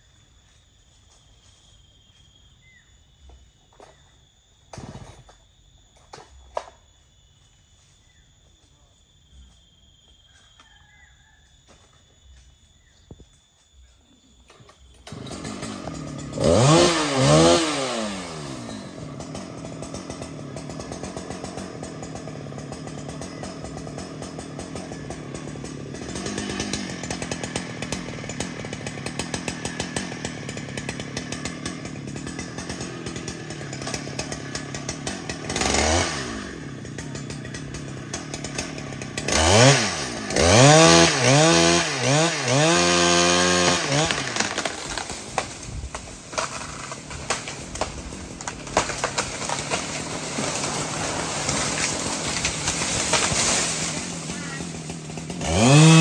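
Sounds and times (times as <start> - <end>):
chainsaw cutting into a limb: 4.8 - 5.3, 15.0 - 56.0
chainsaw revving: 15.0 - 56.0.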